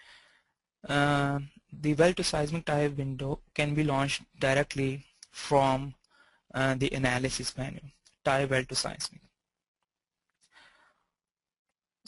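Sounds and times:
faint breath into microphone: 0.0 - 0.6, 6.1 - 6.5, 10.4 - 11.2.

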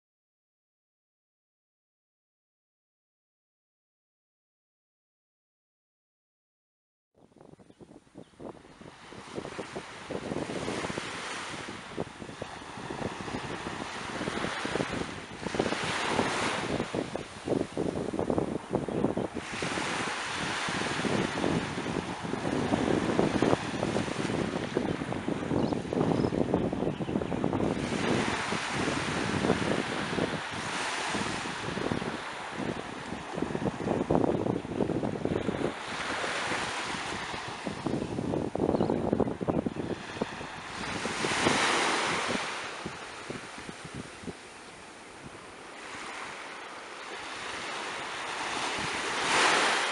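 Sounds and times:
wind buffeting microphone: 7.2 - 49.9
sea waves washing on shore: 8.4 - 49.9.

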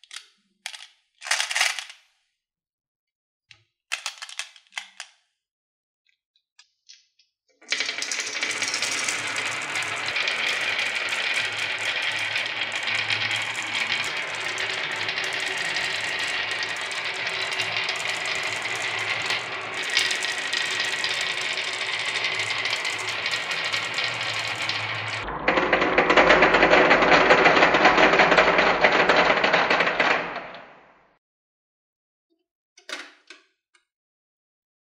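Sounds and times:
marbles pouring into plastic toy: 1.2 - 1.9, 7.7 - 30.6
marbles rattling down wooden board: 1.2 - 1.9, 7.7 - 30.8.

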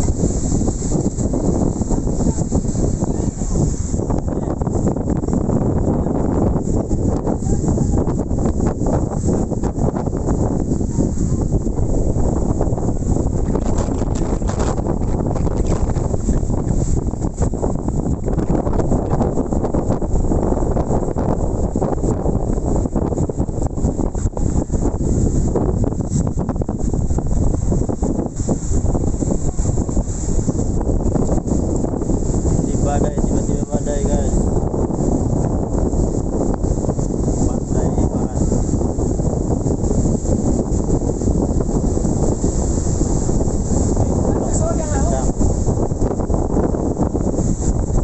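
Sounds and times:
storm wind buffeting microphone: 0.0 - 48.0.

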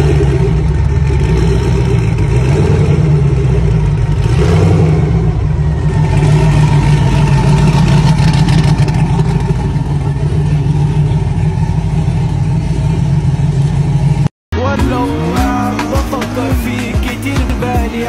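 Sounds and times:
engine idling with low rumble: 0.0 - 18.0.

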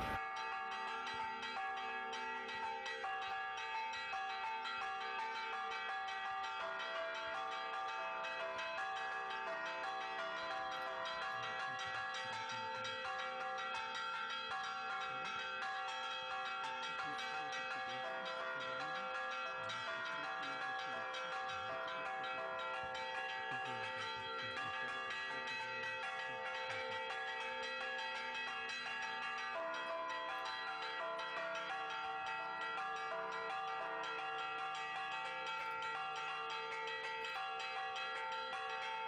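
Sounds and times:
church bells ringing: 0.0 - 39.0
faint voices: 0.0 - 39.0.

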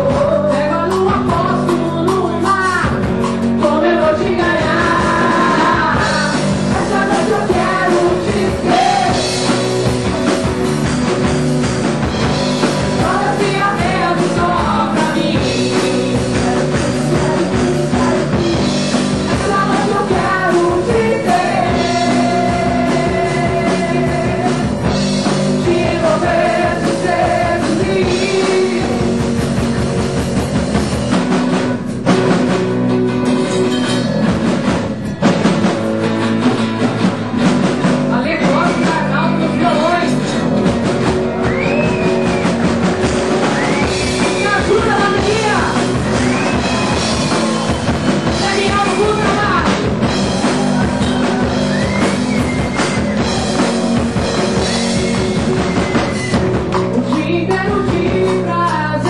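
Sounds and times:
person singing: 0.0 - 9.6, 12.9 - 29.6, 56.8 - 59.0
bass guitar: 0.0 - 59.0
drum kit: 0.0 - 59.0
guitar: 0.0 - 59.0
live rock band playing: 0.0 - 59.0.

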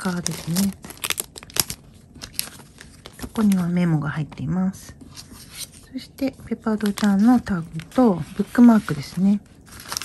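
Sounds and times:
packaging rustling and crinkling: 0.0 - 4.4, 5.0 - 10.0.

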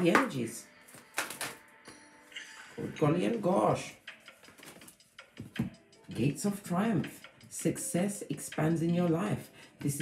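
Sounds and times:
faint background music: 0.0 - 10.0
cards being shuffled: 0.9 - 1.6, 4.3 - 5.6.

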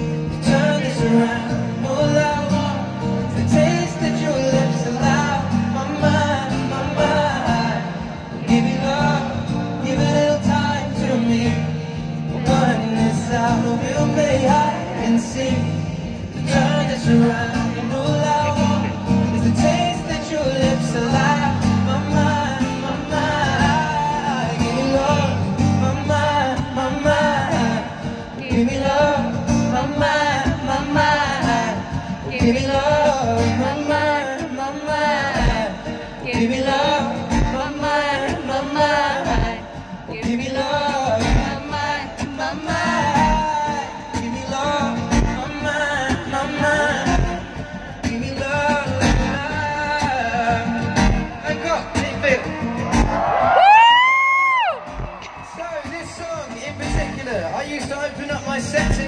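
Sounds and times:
man singing wordless vocals: 0.0 - 52.6, 55.6 - 59.0
strummed acoustic guitar: 0.0 - 53.8, 54.8 - 59.0.

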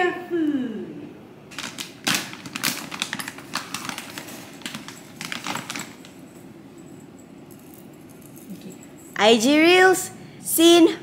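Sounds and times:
plastic bag crinkling: 1.5 - 6.4
dry kibble rattling: 1.5 - 6.5.

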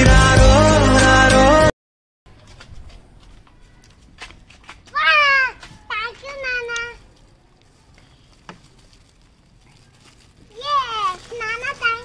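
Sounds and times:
young child's voice: 4.9 - 7.1, 10.5 - 12.0.

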